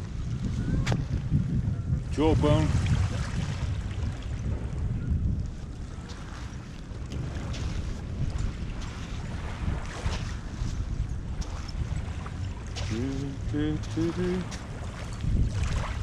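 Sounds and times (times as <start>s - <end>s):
wind buffeting microphone: 0.0s - 16.0s
footsteps on gritty sand: 5.6s - 12.0s.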